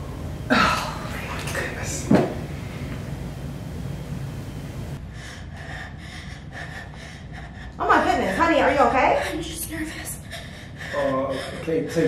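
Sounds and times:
girl hyperventilating: 0:00.5 - 0:01.2.

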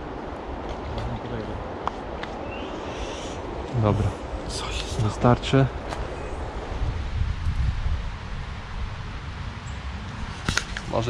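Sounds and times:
wind hissing in trees: 0:00.0 - 0:11.0
wind rumble on microphone: 0:00.0 - 0:11.0
sharp click: 0:10.4 - 0:10.9.

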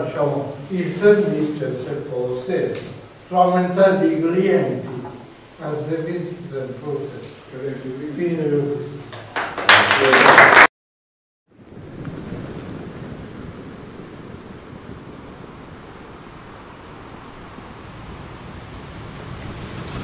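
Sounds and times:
man speaking: 0:00.0 - 0:09.1
sea surf: 0:11.5 - 0:20.0.

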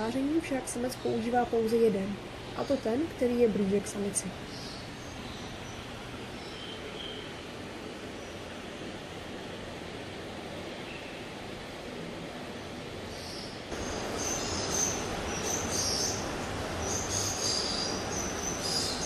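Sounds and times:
steady hissing noise: 0:00.0 - 0:19.0
high chirping calls: 0:13.2 - 0:19.0.

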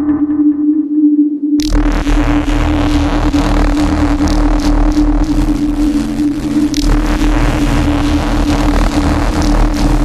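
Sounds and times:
deep bass: 0:00.0 - 0:10.0
pulsing synth pattern: 0:00.0 - 0:10.0
synth drone: 0:00.0 - 0:10.0.

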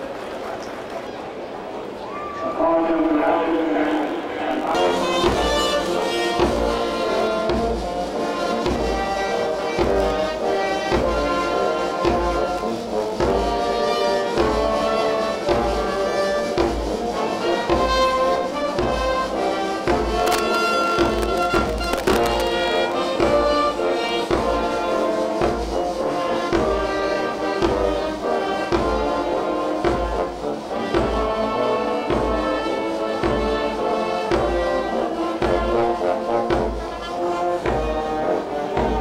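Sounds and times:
brass band playing: 0:02.5 - 0:39.0
bass drum beat: 0:19.9 - 0:23.6.

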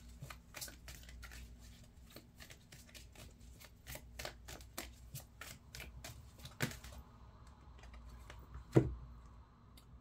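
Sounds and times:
cards being shuffled: 0:00.0 - 0:07.0.

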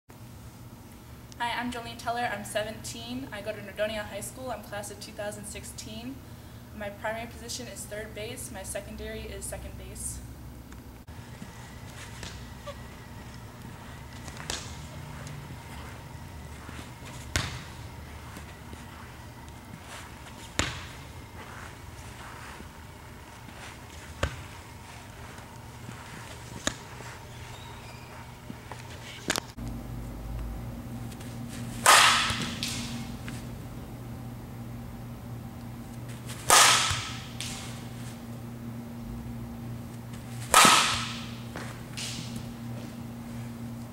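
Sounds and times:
steady low hum: 0:00.1 - 0:43.9
bat striking softball: 0:16.7 - 0:17.9, 0:31.8 - 0:33.1, 0:36.3 - 0:37.8, 0:40.4 - 0:42.4.

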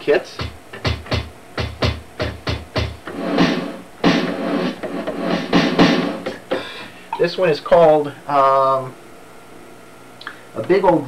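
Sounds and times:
synthesizer drum hits: 0:00.4 - 0:06.6.

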